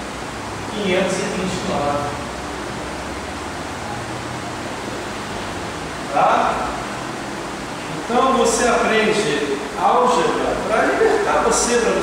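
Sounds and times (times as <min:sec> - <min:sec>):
room noise hiss: 0:00.0 - 0:12.0
man speaking: 0:00.7 - 0:02.2, 0:06.1 - 0:06.8, 0:08.1 - 0:12.0.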